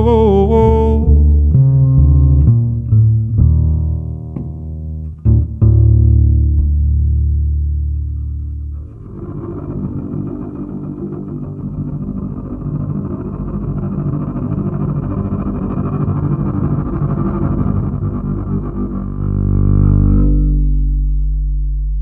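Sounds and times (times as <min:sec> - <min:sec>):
double bass played pizzicato: 0:00.0 - 0:22.0
plucked string accompaniment: 0:00.0 - 0:22.0.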